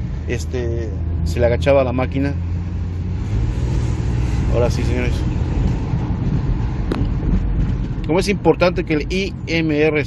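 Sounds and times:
engine and road noise in car: 0:00.0 - 0:10.0.

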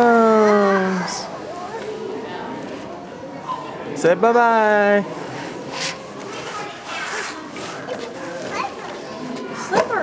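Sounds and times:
children's voices: 0:00.0 - 0:03.9, 0:06.2 - 0:10.0.

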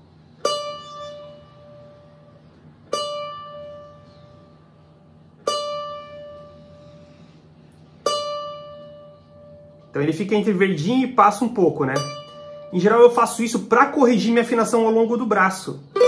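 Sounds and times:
plucked cavaquinho string ringing: 0:00.4 - 0:04.6, 0:05.4 - 0:06.8, 0:08.0 - 0:09.9, 0:11.1 - 0:13.7, 0:15.8 - 0:16.0.

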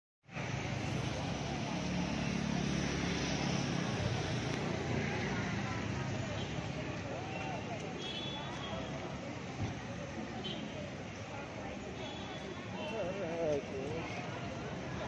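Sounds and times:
traffic of passing motorcycles: 0:00.3 - 0:15.0
crowd chatter: 0:00.4 - 0:15.0.

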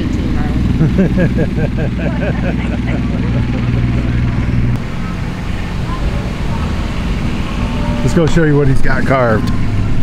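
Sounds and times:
engine idling: 0:00.0 - 0:10.0
faint voices: 0:01.9 - 0:09.5.

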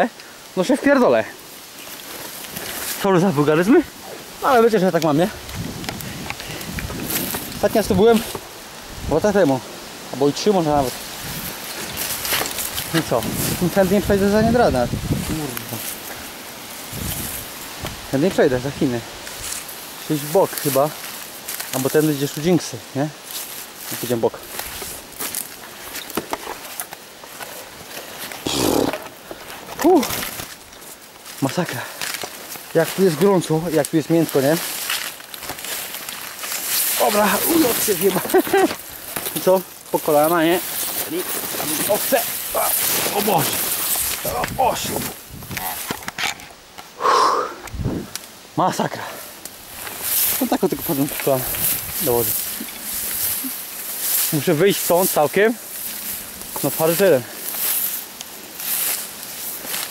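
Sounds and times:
twigs cracking: 0:00.0 - 0:08.7, 0:09.4 - 0:47.0, 0:49.3 - 0:59.9
brush rustling: 0:00.0 - 0:59.9
man groaning with effort: 0:28.4 - 0:29.0, 0:47.0 - 0:47.6
short vocal sound: 0:28.4 - 0:29.0, 0:47.0 - 0:48.1
man grunting: 0:28.5 - 0:29.0, 0:47.0 - 0:47.6.

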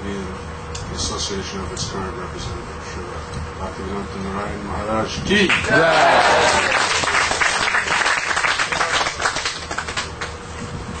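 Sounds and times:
audience applauding: 0:05.6 - 0:10.4.

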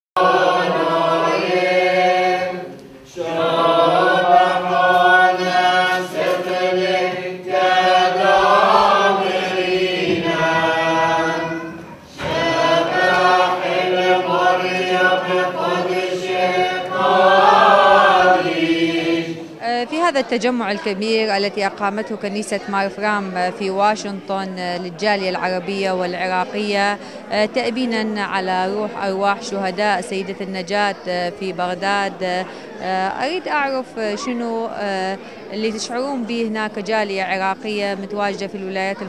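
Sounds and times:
voices singing chant: 0:00.2 - 0:22.0.

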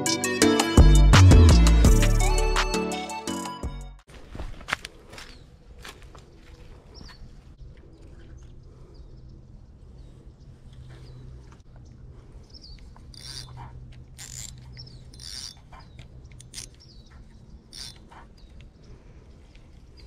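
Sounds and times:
fishing reel ratcheting: 0:13.1 - 0:13.6, 0:14.2 - 0:15.6, 0:17.7 - 0:18.1.

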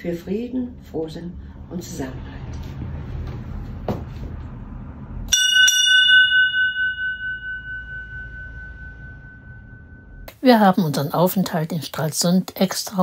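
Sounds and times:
ship's bell ringing: 0:05.3 - 0:10.3.

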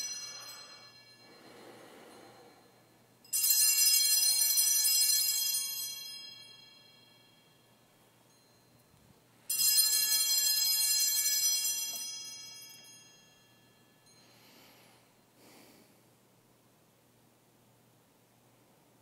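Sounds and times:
altar bells ringing: 0:00.0 - 0:15.2.

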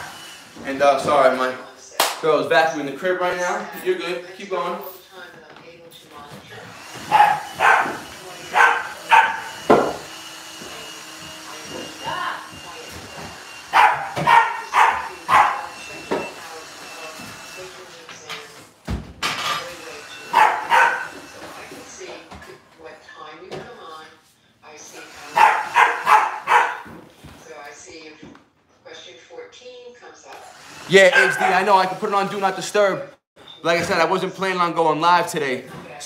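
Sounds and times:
dog barking: 0:07.0 - 0:09.8, 0:13.7 - 0:15.8, 0:20.2 - 0:21.2, 0:25.2 - 0:26.9, 0:31.1 - 0:31.7.

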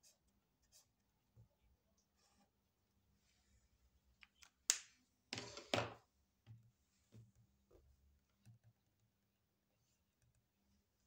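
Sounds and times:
marker scratching on paper: 0:00.0 - 0:01.0.

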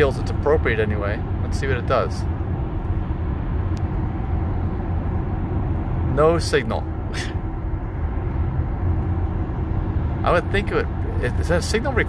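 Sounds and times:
road and tyre rumble in car cabin: 0:00.0 - 0:12.0.

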